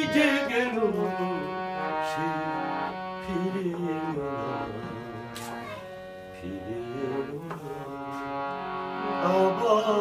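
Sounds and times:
man singing: 0.0s - 5.6s, 6.3s - 10.0s
harmonium holding a chord: 0.0s - 10.0s.

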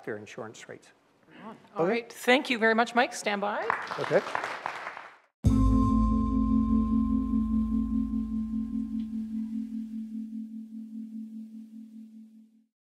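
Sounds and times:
low metallic bell tone ringing: 5.5s - 12.7s.

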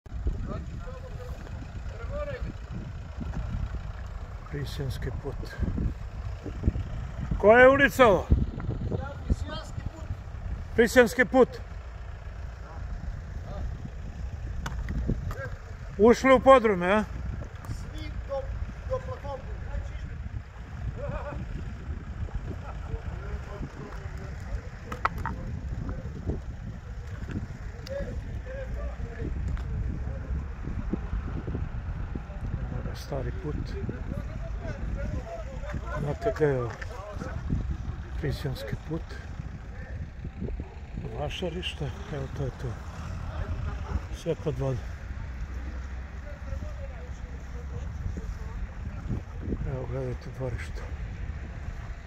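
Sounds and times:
low rumble: 0.1s - 52.0s
distant people talking: 0.2s - 52.0s.

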